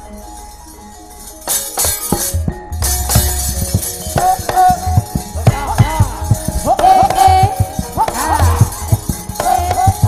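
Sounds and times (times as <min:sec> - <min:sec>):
gamelan music: 0:00.0 - 0:10.0
drum strokes: 0:01.4 - 0:10.0.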